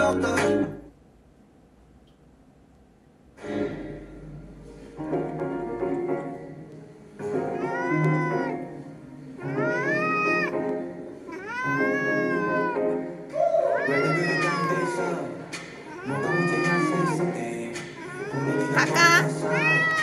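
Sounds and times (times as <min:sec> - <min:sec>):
music: 0:00.0 - 0:00.9, 0:03.4 - 0:20.0
cat meowing: 0:07.5 - 0:08.6, 0:09.5 - 0:10.5, 0:11.3 - 0:12.8, 0:13.4 - 0:15.2, 0:15.9 - 0:17.2, 0:18.0 - 0:20.0.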